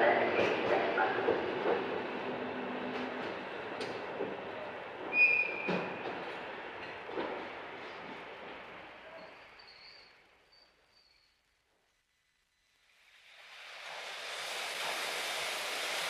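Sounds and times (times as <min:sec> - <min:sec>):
voices: 0:00.0 - 0:01.8
steam train running: 0:13.2 - 0:16.0.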